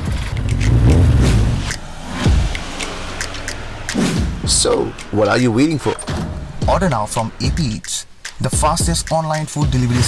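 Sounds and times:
vehicle engine revving: 0:00.0 - 0:04.5.

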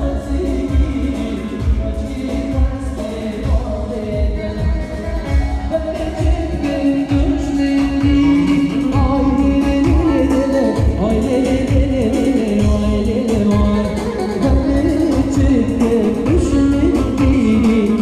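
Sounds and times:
electronic keyboard: 0:00.0 - 0:18.0
man singing into microphone: 0:00.0 - 0:18.0
steady drum beat: 0:00.0 - 0:18.0.

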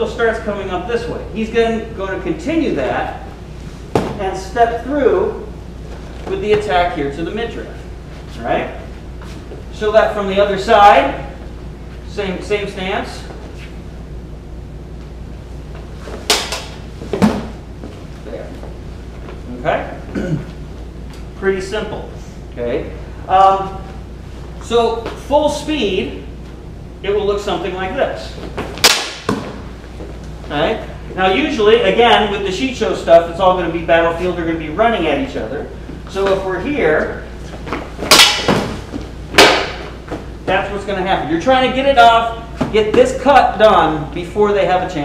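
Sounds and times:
lightsaber blades clashing: 0:38.0 - 0:39.9.

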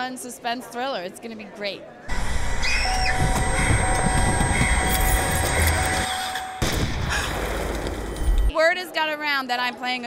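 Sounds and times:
long held music tones: 0:02.1 - 0:06.7
sudden music hit: 0:02.2 - 0:08.2.

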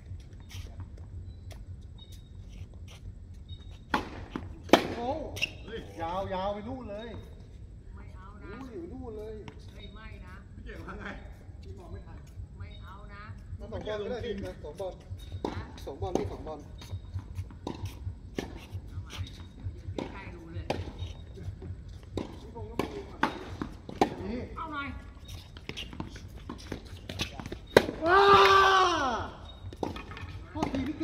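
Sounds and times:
players' voices: 0:18.4 - 0:31.0
tennis ball struck and bouncing: 0:19.2 - 0:21.1, 0:22.1 - 0:24.4, 0:25.6 - 0:28.7, 0:29.5 - 0:31.0
loud drawn-out shout: 0:28.0 - 0:29.3.

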